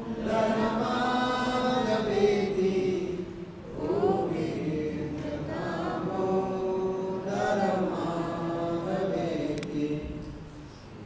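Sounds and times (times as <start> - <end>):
group chanting: 0.0 - 10.2.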